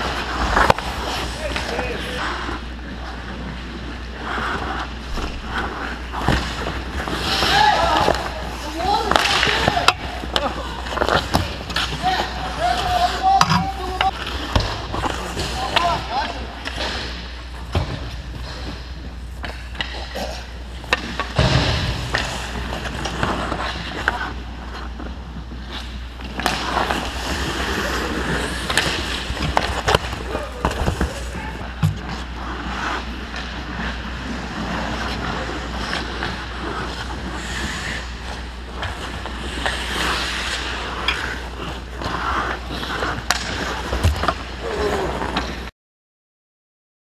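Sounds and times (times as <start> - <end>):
skate blades scraping ice: 0.0 - 45.7
steady low hum: 0.0 - 45.7
sticks and pucks clacking: 0.0 - 45.7.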